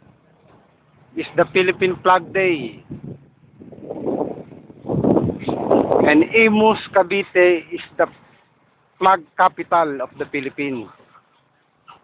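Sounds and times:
wind gusting through leaves: 0.9s - 10.7s
wind buffeting microphone: 1.1s - 8.2s.

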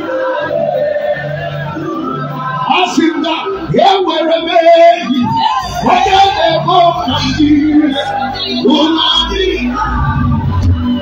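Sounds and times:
steady bass: 0.0s - 11.0s.

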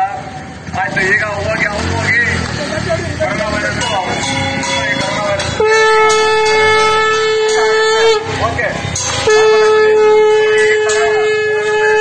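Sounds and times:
men talking loudly: 0.0s - 12.0s
street traffic rumble: 0.0s - 12.0s.

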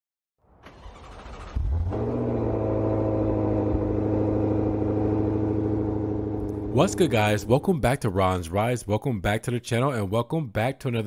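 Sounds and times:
car engine running: 1.0s - 7.9s.

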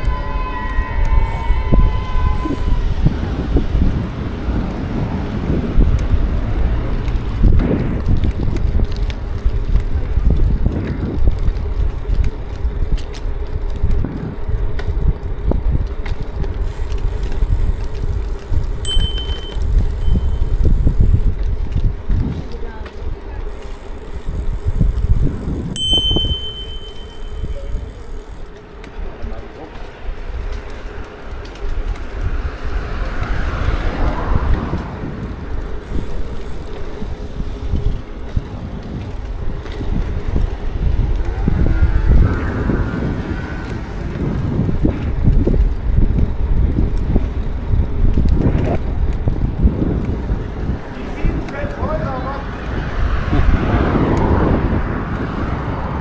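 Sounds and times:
bicycle tyres rumbling on brick: 0.0s - 56.0s
wind buffeting microphone: 0.0s - 56.0s
bicycle bell ringing: 18.8s - 20.8s, 25.7s - 28.2s.

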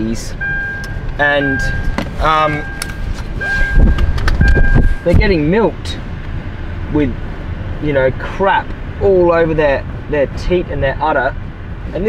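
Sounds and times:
car interior low rumble: 0.0s - 12.0s.

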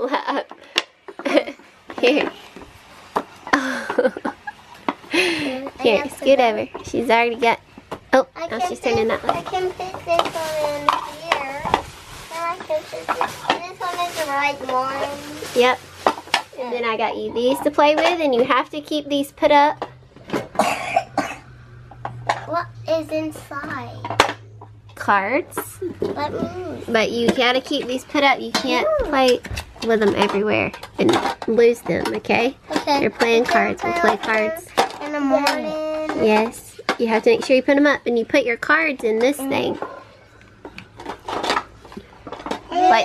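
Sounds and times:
cardboard rustle: 9.4s - 16.6s
person coughing: 20.6s - 21.5s.

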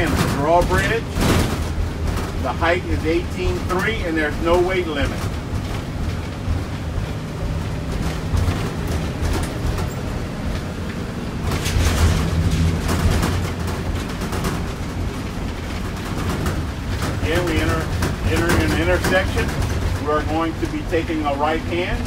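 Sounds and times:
bus engine and road rumble: 0.0s - 22.0s
tyres rattling over steel grate: 0.0s - 22.0s.

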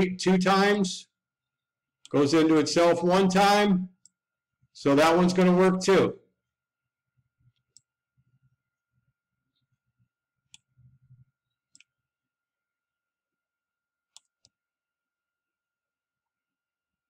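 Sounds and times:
computer mouse clicks: 7.4s - 7.9s, 10.5s - 12.0s, 14.1s - 14.6s.

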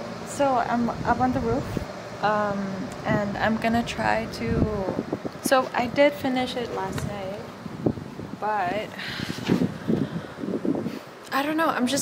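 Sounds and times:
wind buffeting microphone: 0.3s - 12.0s.

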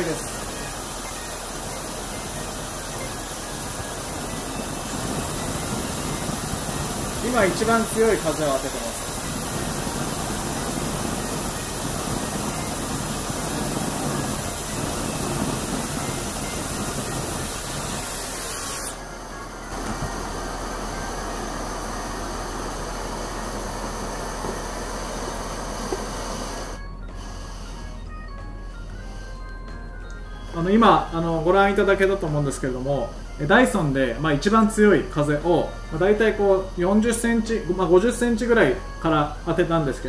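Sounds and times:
fan blowing air: 0.0s - 40.0s
gas burner hissing: 0.0s - 40.0s.

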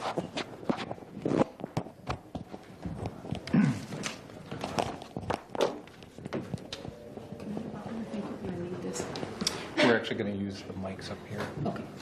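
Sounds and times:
faint room murmur: 0.0s - 12.0s.

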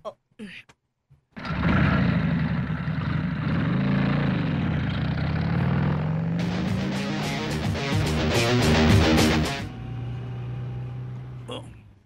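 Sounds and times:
vehicle engine running: 1.4s - 11.8s.

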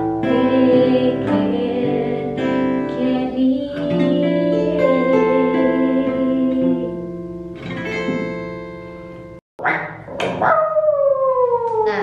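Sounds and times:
acoustic guitar chord: 0.0s - 9.4s.

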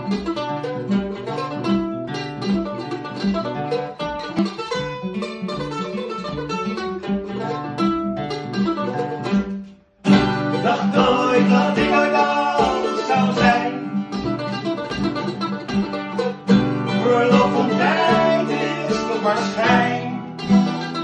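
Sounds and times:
acoustic guitar: 0.0s - 21.0s
plucked string instrument: 0.0s - 21.0s.

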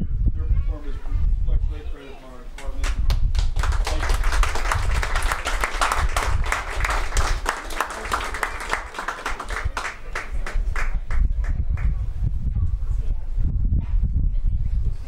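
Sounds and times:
audience applauding: 2.8s - 11.6s.

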